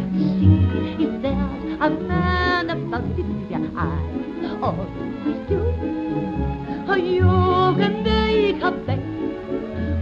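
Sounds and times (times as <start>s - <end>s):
instrumental accompaniment: 0.0s - 10.0s
woman singing: 0.7s - 5.9s, 6.8s - 9.2s.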